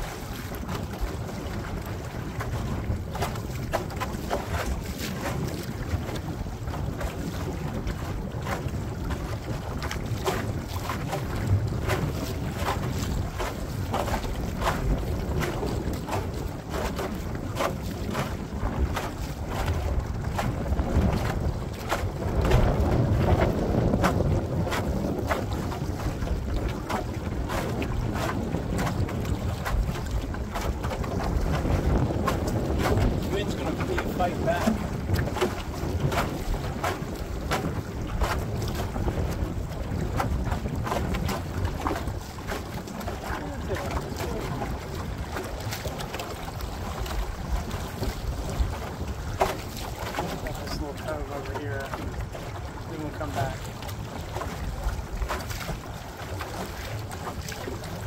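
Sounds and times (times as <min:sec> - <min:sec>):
waves slapping against boat: 0:00.0 - 0:58.0
wind buffeting microphone: 0:00.0 - 0:58.0.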